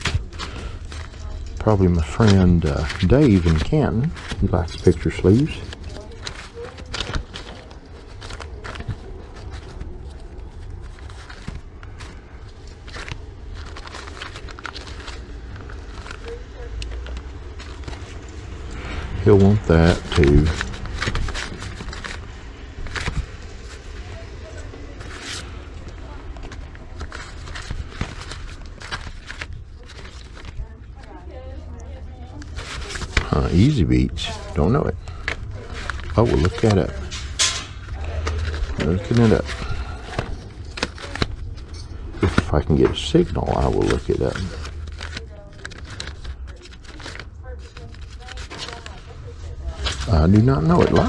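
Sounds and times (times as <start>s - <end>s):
paper sleeves rustling: 0.0s - 51.0s.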